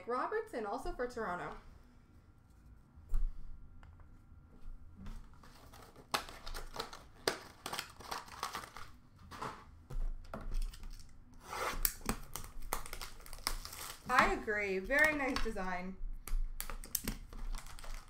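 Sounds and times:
card packaging rustling and crinkling: 0:05.1 - 0:11.1, 0:11.7 - 0:15.8, 0:16.4 - 0:18.0.

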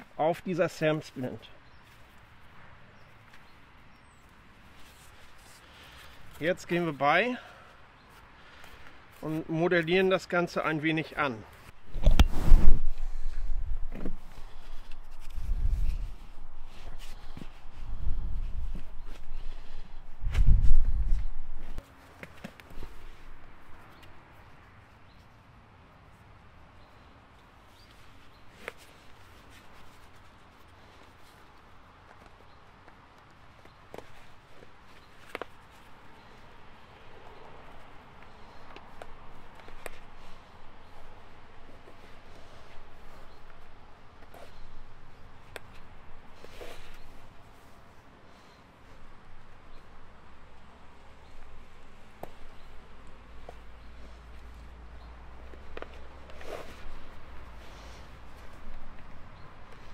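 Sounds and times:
splint rustling and scuffing: 0:11.5 - 0:24.2, 0:27.7 - 0:49.0, 0:51.3 - 0:59.9.

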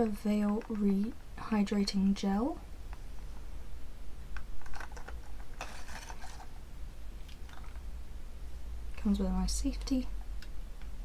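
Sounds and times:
packaging rustling: 0:04.6 - 0:06.6.

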